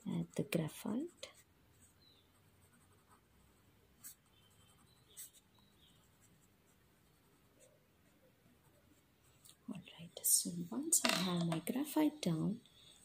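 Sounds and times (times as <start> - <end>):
pencil strokes on paper: 0.1 - 10.8.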